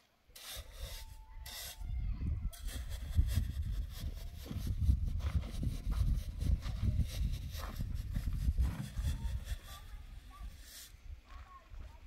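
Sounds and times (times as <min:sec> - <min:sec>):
shovel scraping sand: 0:00.4 - 0:01.8, 0:02.5 - 0:11.0.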